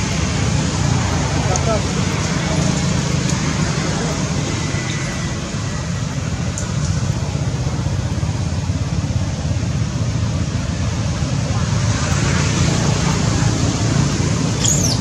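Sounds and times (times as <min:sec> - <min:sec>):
outdoor background rumble: 0:00.0 - 0:15.0.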